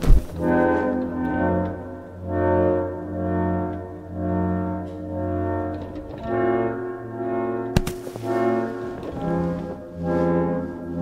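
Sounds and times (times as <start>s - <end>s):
orchestral music with brass: 0.3s - 11.0s
sharp struck hit: 7.8s - 8.3s.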